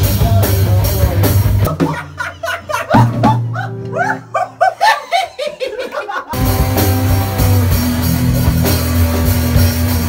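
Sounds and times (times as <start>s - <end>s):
loud yelping laughter: 1.7s - 6.7s.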